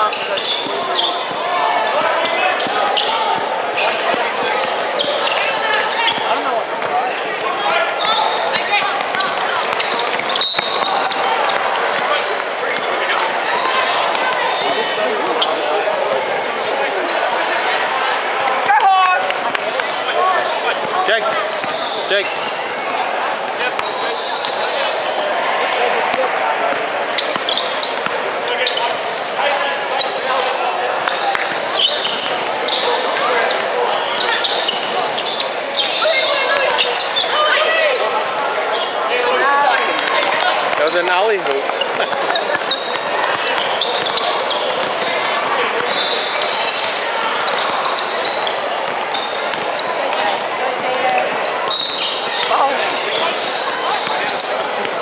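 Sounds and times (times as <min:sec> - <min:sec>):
indistinct chatter in large hall: 0:00.0 - 0:55.0
ball bouncing on hardwood court: 0:41.6 - 0:45.2, 0:46.8 - 0:50.9.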